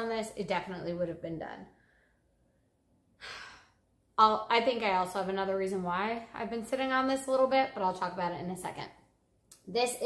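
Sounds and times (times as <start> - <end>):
woman sighing: 3.2 - 3.8.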